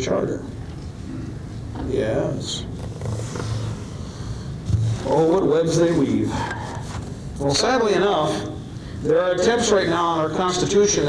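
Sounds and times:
recording hum and hiss: 0.0 - 11.0.

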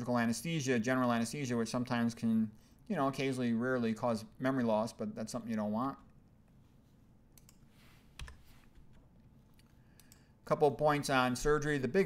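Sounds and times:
computer clicks: 7.3 - 7.6, 9.9 - 10.3.

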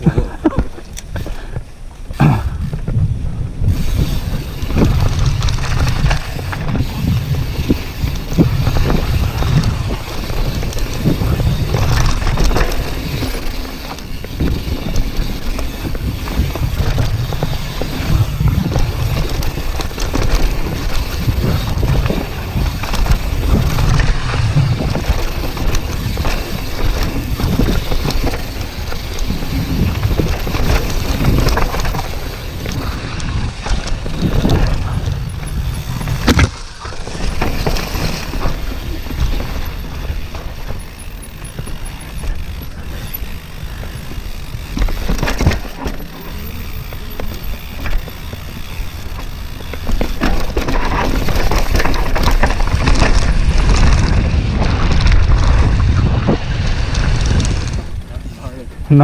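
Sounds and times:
bike tyres rumbling on dirt: 0.0 - 59.0
wind on microphone: 2.2 - 36.6, 49.9 - 59.0
chain and suspension clatter: 3.7 - 59.0.

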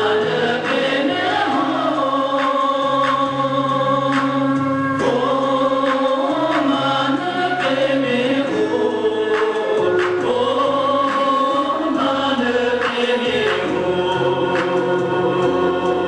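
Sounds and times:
backing track of held chords: 0.0 - 16.0.

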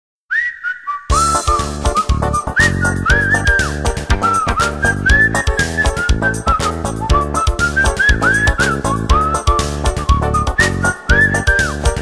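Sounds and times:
whistled melody: 0.3 - 12.0
band playing beat bass guitars: 1.1 - 12.0.

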